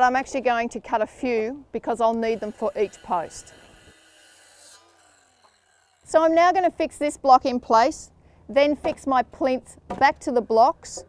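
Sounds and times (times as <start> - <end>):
faint circular saw cutting: 2.1 - 6.7.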